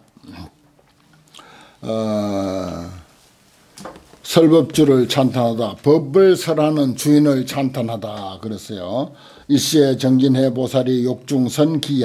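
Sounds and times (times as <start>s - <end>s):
man speaking: 1.8s - 3.1s, 4.2s - 12.0s
man's throaty vocal sound: 1.8s - 3.1s.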